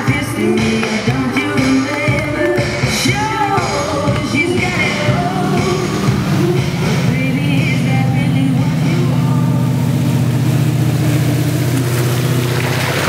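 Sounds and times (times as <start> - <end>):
pop song with singing: 0.0 - 11.3
boat engine running: 0.0 - 13.0.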